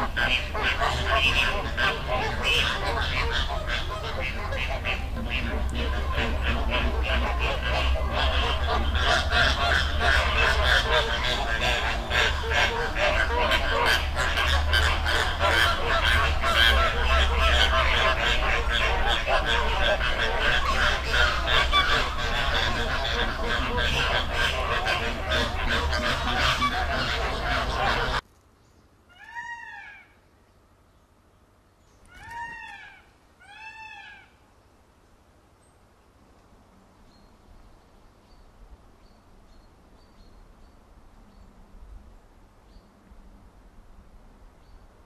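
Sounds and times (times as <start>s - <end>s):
flamingos honking: 0.0s - 28.2s.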